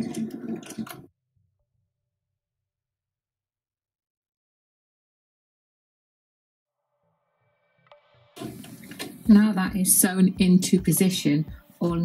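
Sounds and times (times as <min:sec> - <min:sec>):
sewing machine stitching: 0:00.0 - 0:01.1.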